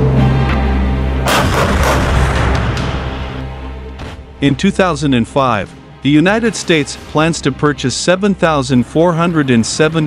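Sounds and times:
background music: 0.0s - 10.0s
artillery guns firing: 1.3s - 2.7s.

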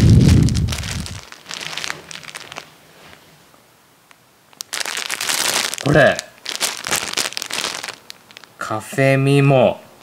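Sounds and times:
plastic bag crinkling: 0.0s - 3.2s, 4.1s - 8.7s
person speaking: 5.7s - 7.8s.

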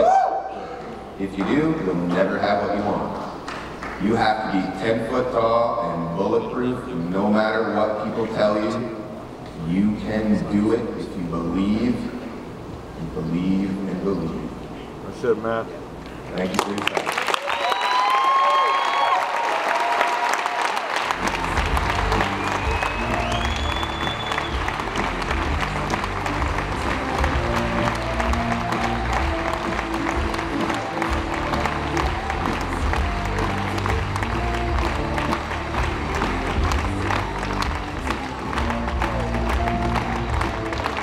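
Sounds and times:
whoop: 0.0s - 0.8s, 17.4s - 20.8s
audience applauding and cheering: 0.0s - 1.0s, 16.4s - 41.0s.

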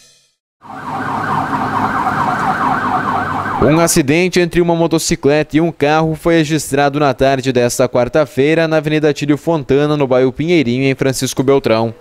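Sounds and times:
ambulance siren warbling: 0.6s - 4.0s.

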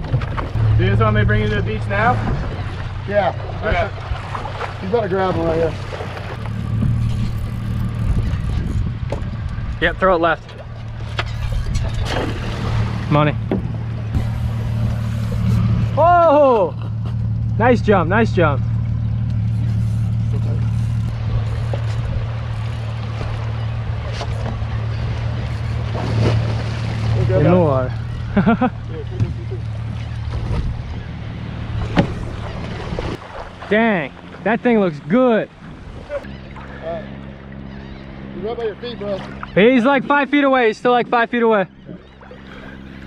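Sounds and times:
boat motor humming: 0.0s - 43.0s
water noise: 0.0s - 43.0s
wind: 0.0s - 43.0s.

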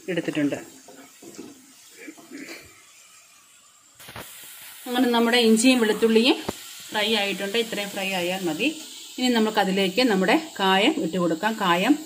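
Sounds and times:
ginger sizzling in hot oil: 0.0s - 12.0s.

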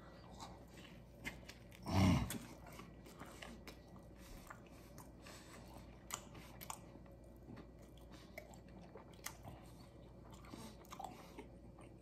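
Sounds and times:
man chewing food: 0.0s - 12.0s.

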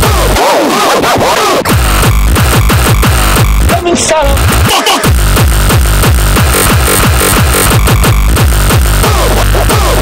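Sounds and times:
pounding kick drum: 0.0s - 0.4s, 1.7s - 10.0s.

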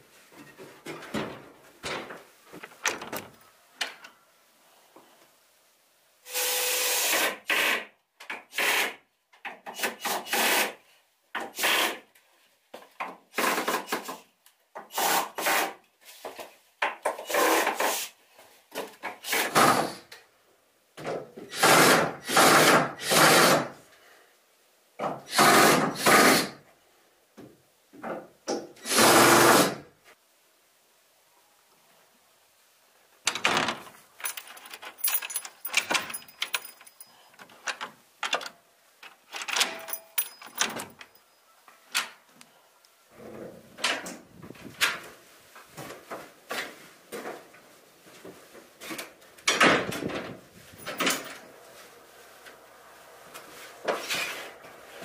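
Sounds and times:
cordless drill into wood: 21.5s - 23.7s, 25.3s - 26.5s, 28.8s - 29.8s.

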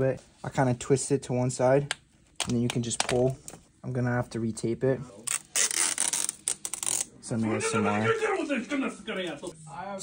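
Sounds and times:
tape peeling off plastic: 5.2s - 7.1s.

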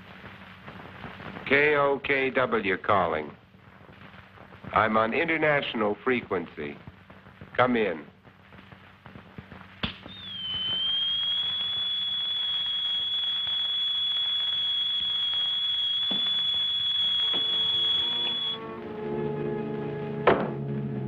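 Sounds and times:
static hiss: 0.0s - 18.7s
high-pitched radio whistle: 10.0s - 18.6s.

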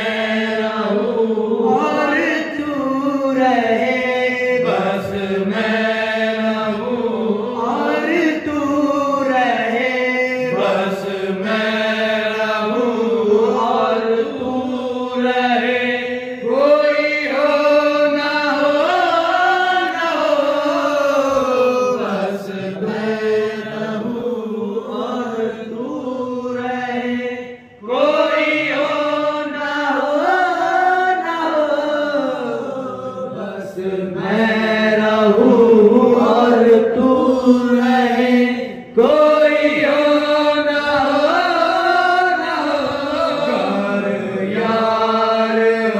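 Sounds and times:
men singing devotional song together: 0.0s - 45.9s.

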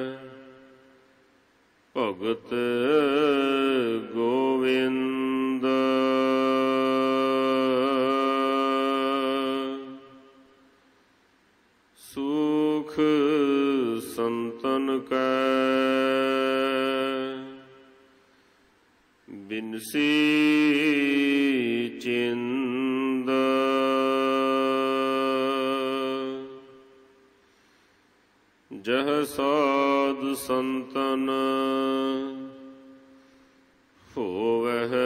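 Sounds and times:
person chanting: 0.0s - 1.1s, 1.9s - 10.7s, 12.0s - 18.2s, 19.3s - 27.3s, 28.7s - 33.3s, 34.0s - 35.0s.

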